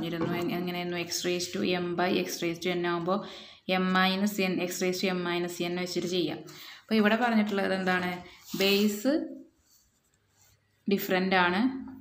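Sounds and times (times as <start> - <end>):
person speaking: 0.0 - 3.1, 3.8 - 9.6.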